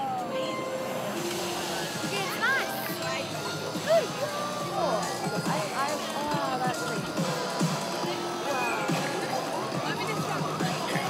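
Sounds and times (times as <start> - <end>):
crowd background: 0.0 - 11.0.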